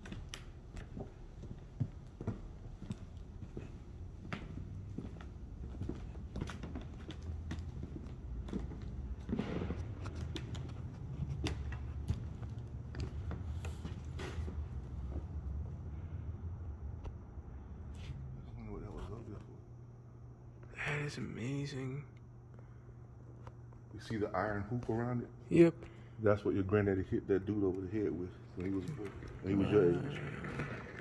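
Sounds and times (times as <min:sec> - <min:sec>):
footsteps and creaks on floor: 0:00.0 - 0:15.8, 0:28.4 - 0:31.0.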